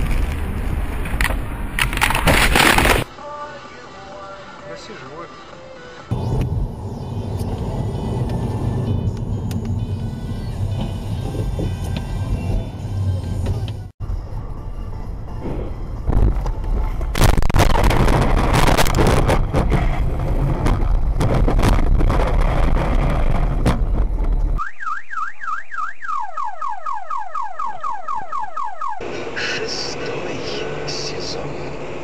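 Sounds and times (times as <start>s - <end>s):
car rumbling over rough ground: 6.1s - 24.6s
car alarm siren: 24.6s - 29.1s.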